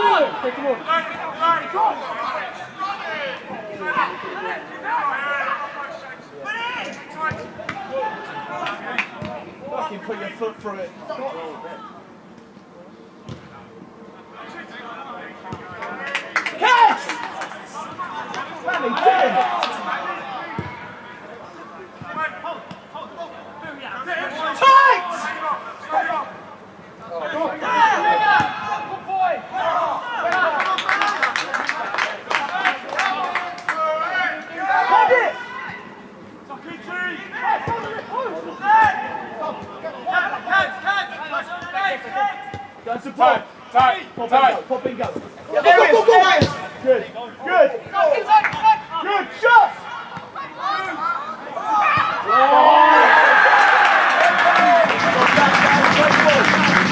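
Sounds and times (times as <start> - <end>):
voices shouting and calling: 32.6 - 54.8.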